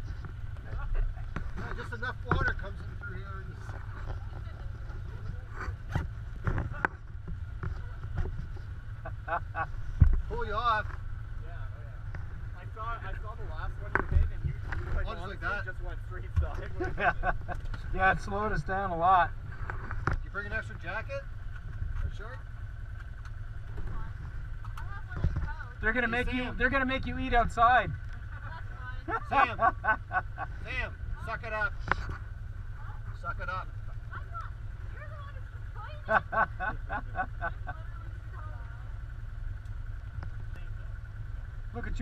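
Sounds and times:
engine running at low speed: 0.0s - 42.0s.

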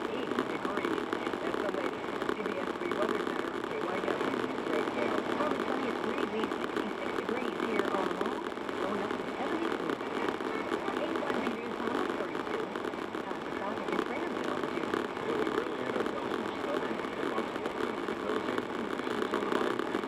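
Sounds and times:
news broadcast on car radio: 0.0s - 20.0s.

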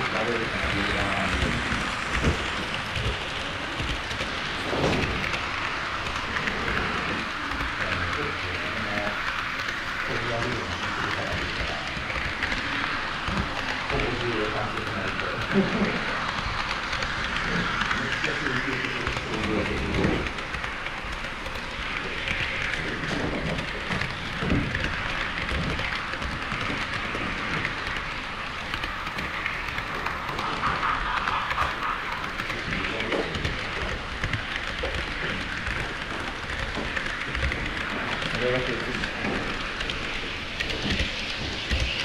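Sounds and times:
model train wheels rumbling on rails: 0.0s - 42.0s.

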